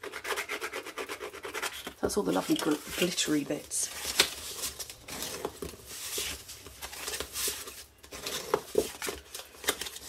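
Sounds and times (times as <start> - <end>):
bone folder scraping paper: 0.0 - 3.2
paper rustling: 1.7 - 10.0.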